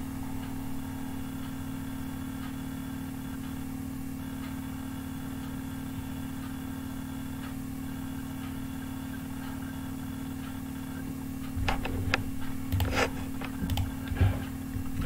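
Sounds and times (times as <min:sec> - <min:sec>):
faint ticking: 0:00.0 - 0:15.0
low electrical hum: 0:00.0 - 0:15.0.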